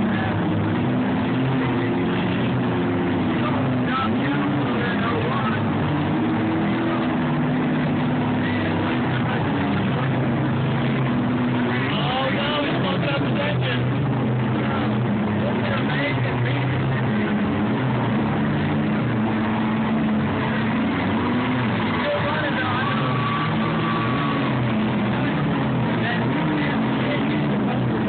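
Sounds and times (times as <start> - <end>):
car engines revving: 0.0 - 28.0
voices: 0.0 - 28.0.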